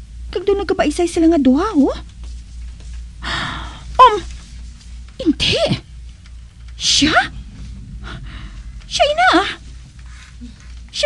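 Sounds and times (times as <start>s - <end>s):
person gasping: 3.2s - 3.9s.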